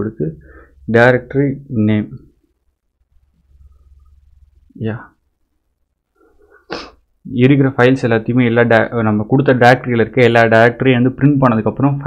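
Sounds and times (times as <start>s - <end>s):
man's sharp burst of breath: 6.6s - 7.0s.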